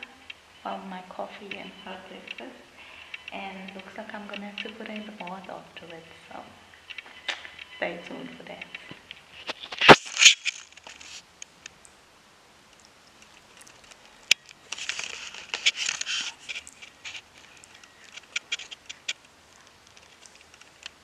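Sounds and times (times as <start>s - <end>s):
scratchy rustle: 8.2s - 11.3s, 13.1s - 21.0s.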